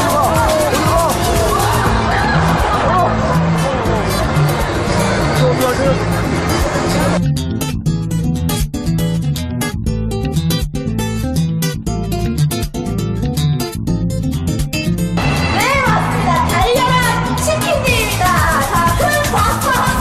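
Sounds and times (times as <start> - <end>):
crowd voices: 0.0 - 7.2, 15.2 - 20.0
acoustic guitar music with bass: 0.0 - 20.0.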